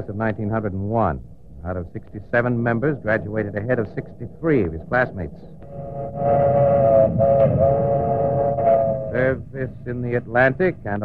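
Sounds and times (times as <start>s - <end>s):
two-note train whistle: 5.6s - 10.4s.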